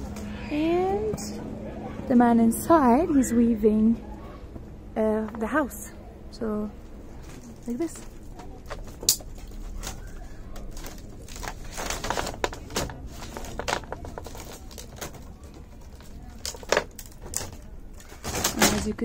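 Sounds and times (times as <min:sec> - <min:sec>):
bamboo strips rustling and clicking: 0:07.2 - 0:19.0.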